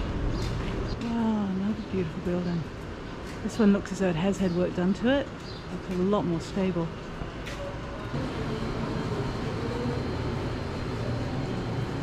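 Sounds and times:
low mechanical hum: 5.0s - 12.0s.

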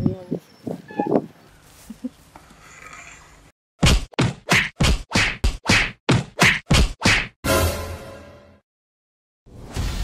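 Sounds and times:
punch sound effects: 3.8s - 8.3s.

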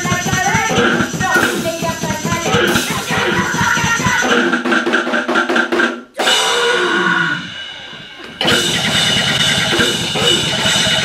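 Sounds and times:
band with drum kit crashing: 0.0s - 11.0s.

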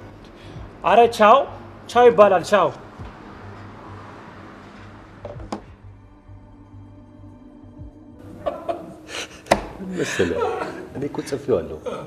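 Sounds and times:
men talking and laughing: 8.2s - 12.0s.

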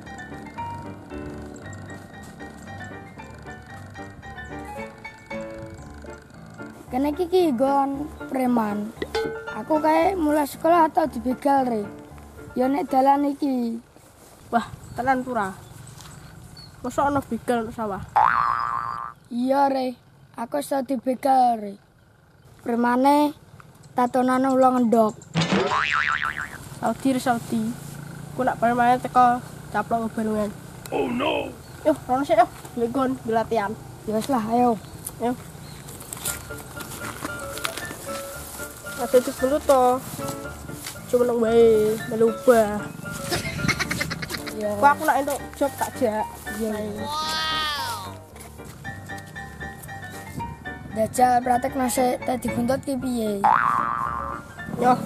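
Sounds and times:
cartoon boing sound effect: 18.2s - 19.2s, 25.4s - 26.6s, 53.4s - 54.9s
person speaking: 30.9s - 32.0s, 43.8s - 48.4s.

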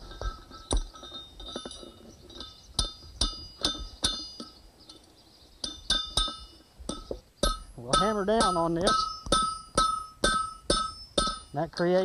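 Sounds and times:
hammer striking metal on anvil: 5.6s - 12.0s.

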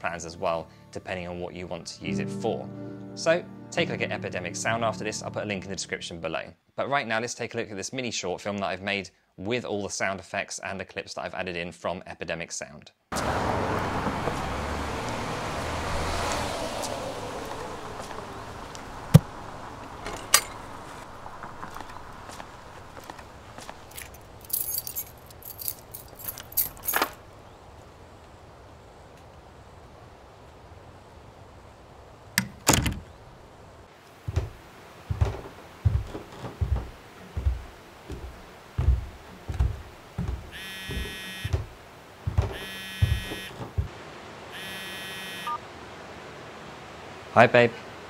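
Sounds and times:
footsteps on wooden floor: 21.6s - 26.4s, 34.2s - 43.9s
keys jangling: 23.8s - 27.2s
door knocking shut: 34.3s - 34.5s, 35.1s - 37.6s, 38.8s - 43.9s
mobile phone ringing: 40.5s - 41.6s, 42.5s - 43.6s, 44.6s - 45.6s.

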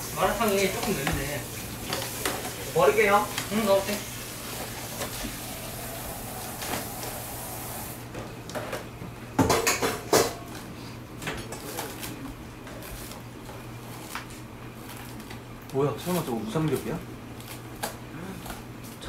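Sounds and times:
food sizzling in a pan: 0.0s - 8.0s
pans and utensils clattering: 0.4s - 5.3s, 8.1s - 10.5s.

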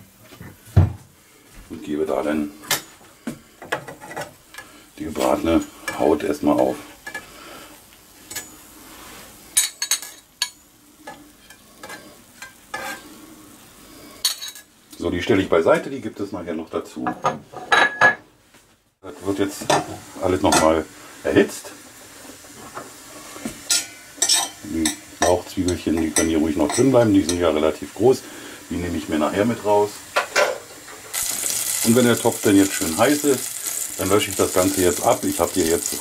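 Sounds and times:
faint sizzle of frying: 0.0s - 17.7s, 18.4s - 36.0s
kitchenware clinking: 3.6s - 4.4s, 8.2s - 8.6s, 9.6s - 13.0s, 14.2s - 14.7s, 17.0s - 18.2s, 23.7s - 27.4s, 30.2s - 33.8s.

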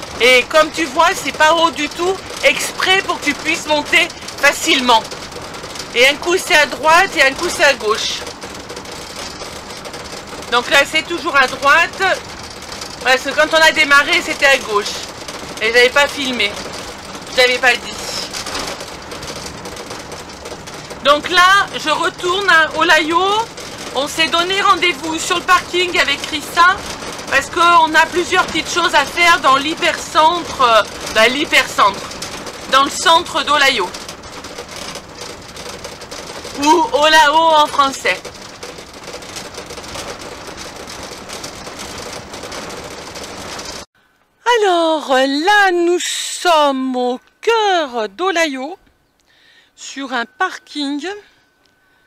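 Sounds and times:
loose fittings rattling: 0.0s - 43.9s
vehicle engine and tyre noise: 0.0s - 43.9s.

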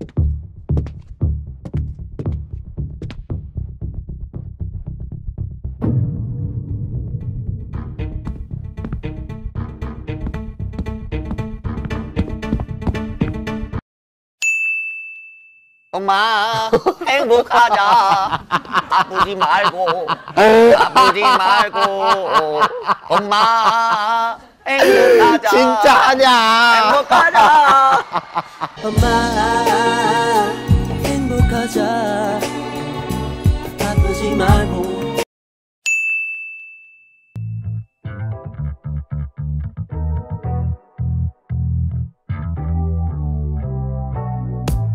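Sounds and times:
deep bass music: 0.0s - 13.8s, 28.9s - 29.8s, 30.6s - 31.8s, 37.4s - 44.9s
high bell-like ding: 14.4s - 15.9s, 35.9s - 37.8s.

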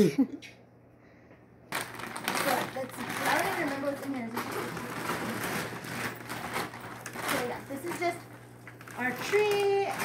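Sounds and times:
plastic bag rustling and crinkling: 1.7s - 10.0s.

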